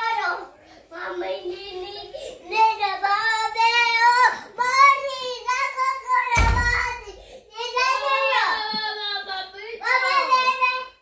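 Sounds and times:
toddler singing: 0.0s - 11.0s.

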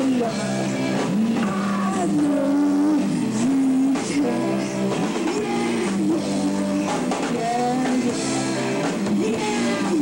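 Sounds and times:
distorted electric guitar notes: 0.0s - 10.0s
live rock band: 0.0s - 10.0s.

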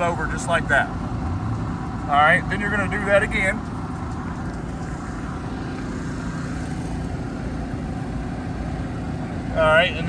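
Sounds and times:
low rumble of outdoor background noise: 0.0s - 10.0s.

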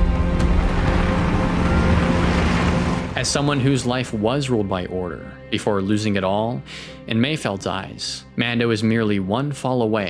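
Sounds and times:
low engine hum: 0.0s - 3.4s
truck rumbling over dirt road: 0.0s - 3.9s.

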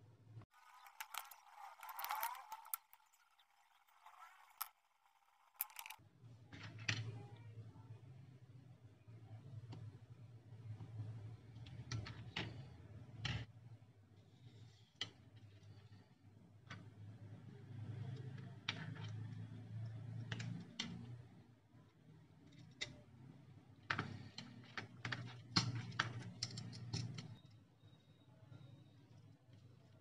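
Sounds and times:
scraping rustle of small parts: 0.5s - 6.0s
faint clicks of small parts: 0.5s - 7.5s, 10.6s - 13.5s, 14.2s - 30.0s.

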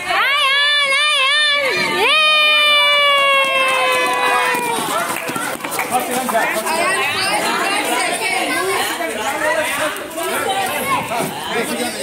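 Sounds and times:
long high shout of encouragement: 0.0s - 5.2s
scattered voices: 3.8s - 12.0s.

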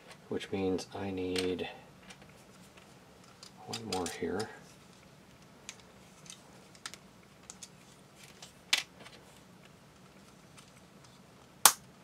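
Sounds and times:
plastic parts clicking together: 3.2s - 4.5s.

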